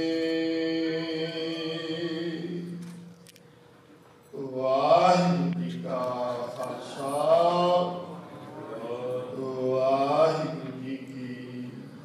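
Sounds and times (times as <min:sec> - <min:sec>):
man chanting a hymn: 0:00.0 - 0:03.0, 0:04.4 - 0:12.0.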